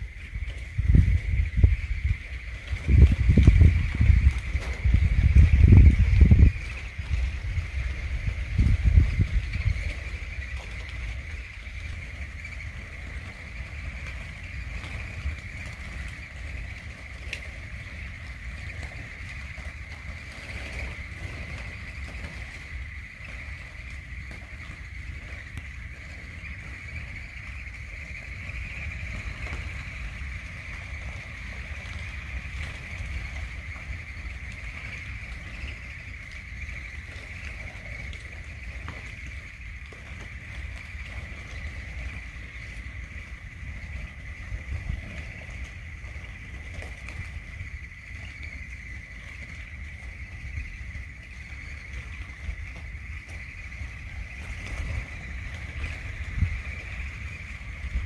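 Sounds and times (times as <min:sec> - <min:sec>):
wind rumbling on microphone: 0:00.0 - 0:58.0.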